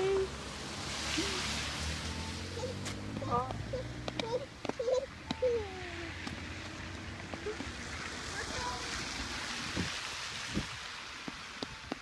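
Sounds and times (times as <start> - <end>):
child's held call: 3.7 - 6.2.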